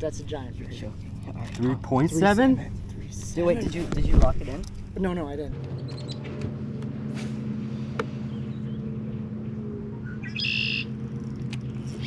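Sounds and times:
low hum: 0.0 - 12.0
bird call: 10.0 - 10.9.

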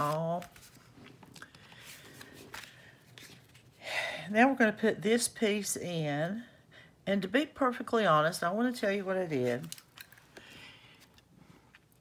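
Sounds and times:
cardstock rustling: 0.0 - 3.7.

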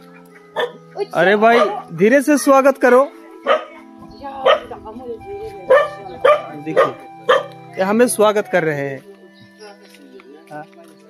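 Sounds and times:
dog barking: 0.5 - 0.8, 1.5 - 1.9, 3.4 - 3.8, 4.4 - 4.8, 5.7 - 7.5.

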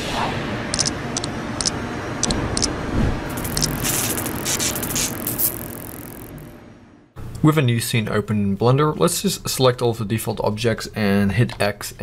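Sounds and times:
static-like noise: 2.2 - 6.6
bright hissing bursts: 3.3 - 6.4.

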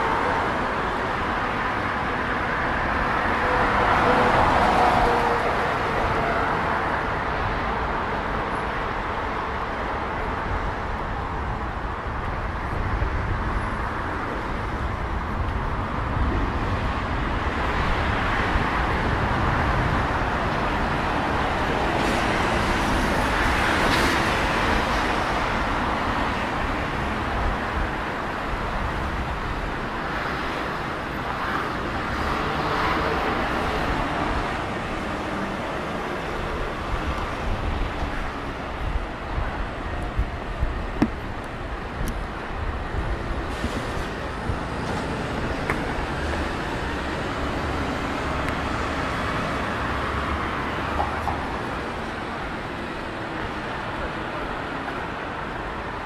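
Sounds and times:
vehicles passing on busy road: 0.0 - 56.0.

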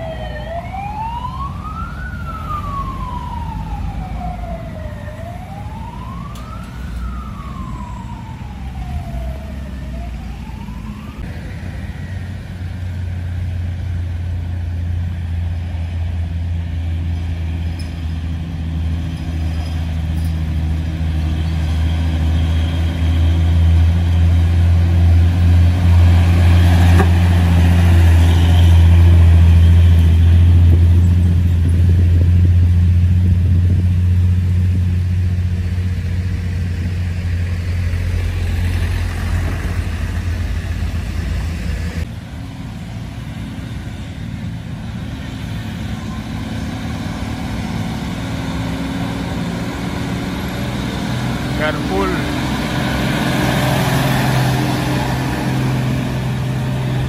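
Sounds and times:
heavy diesel truck engines: 0.0 - 57.0.

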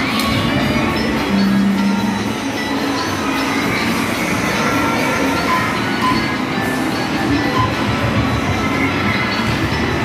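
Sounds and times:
arcade electronic music: 0.0 - 10.0.

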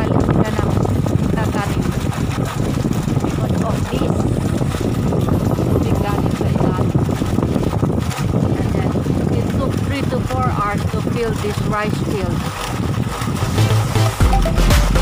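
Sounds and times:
water gushing from a pipe: 0.0 - 15.0.

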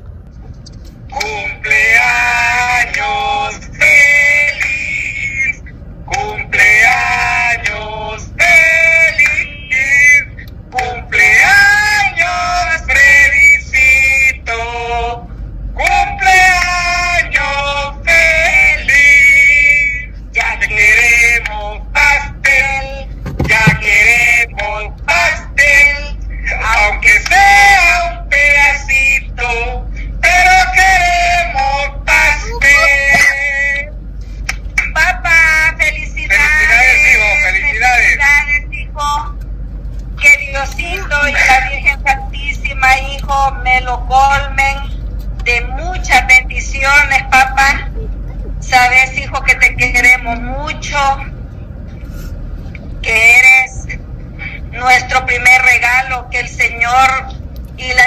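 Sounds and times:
steady low hum: 0.0 - 58.0
man and woman singing: 1.1 - 15.2, 15.8 - 33.9, 34.8 - 39.3, 40.2 - 44.9
woman speaking: 32.4 - 33.1, 40.7 - 41.6.

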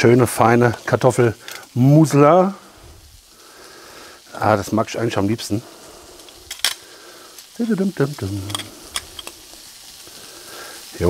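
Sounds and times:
meatballs sizzling in frying pan: 0.0 - 11.0
metal kitchen utensils clicking: 8.4 - 9.4.

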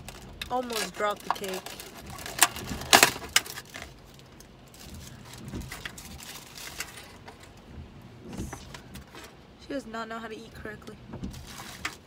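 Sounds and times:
faint handling sounds: 0.0 - 9.4.

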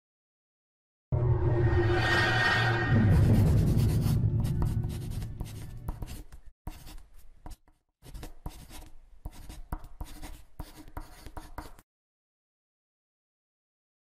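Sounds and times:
marker pen scratching: 3.4 - 11.8.

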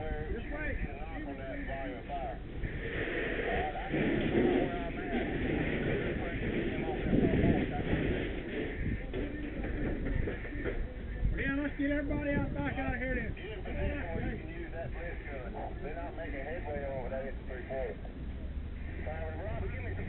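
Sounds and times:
indistinct voices: 0.0 - 20.0
fire hose spraying: 2.5 - 10.4.

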